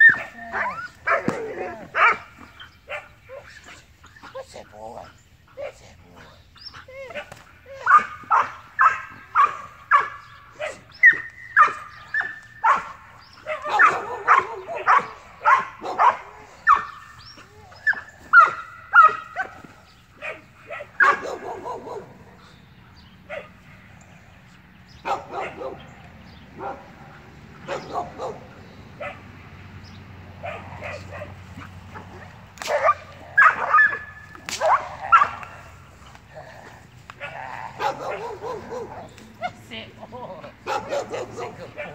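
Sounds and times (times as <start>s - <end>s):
dog barking: 0.0s - 3.7s, 7.1s - 17.0s, 17.8s - 19.6s, 20.2s - 22.5s, 23.3s - 23.6s, 25.0s - 25.9s, 26.6s - 26.9s, 27.6s - 29.2s, 30.4s - 35.6s, 37.2s - 39.6s, 40.6s - 41.9s.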